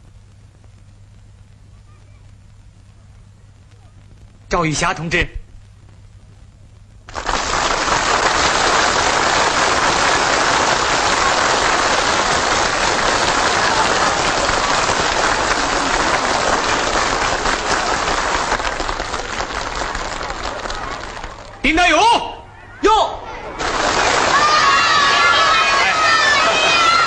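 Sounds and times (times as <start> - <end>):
crowd applauding: 7.1 - 21.8, 23.5 - 27.0.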